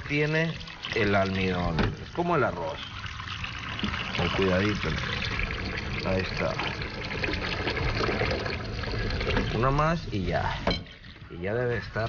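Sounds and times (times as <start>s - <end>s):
faucet running into bowl: 0.0s - 12.0s.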